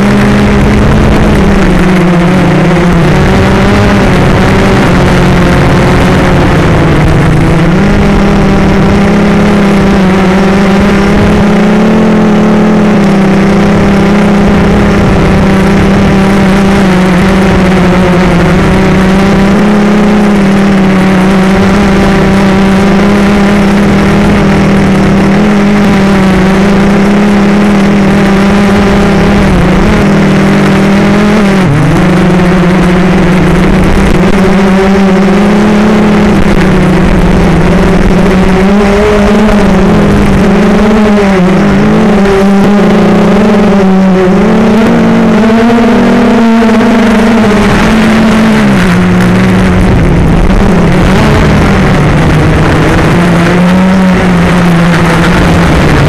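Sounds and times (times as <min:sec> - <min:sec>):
drone motors and propellers whining: 0:00.0 - 0:56.0.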